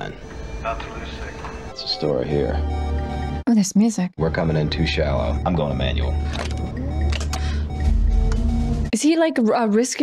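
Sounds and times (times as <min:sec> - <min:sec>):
film music: 0:00.0 - 0:09.0
deep steady rumble: 0:04.2 - 0:08.9.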